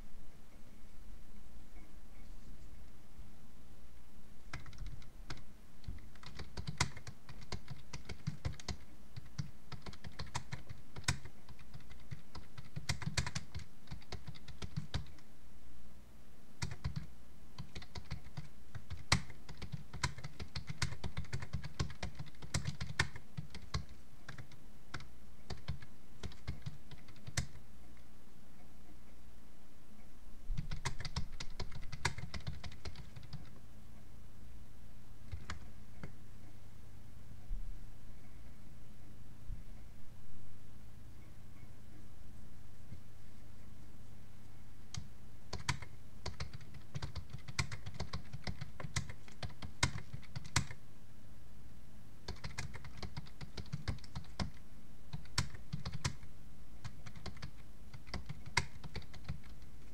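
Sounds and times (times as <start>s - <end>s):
computer keyboard typing: 4.5s - 15.2s, 16.6s - 27.6s, 30.6s - 33.5s, 35.3s - 36.2s, 44.9s - 50.8s, 52.2s - 59.9s.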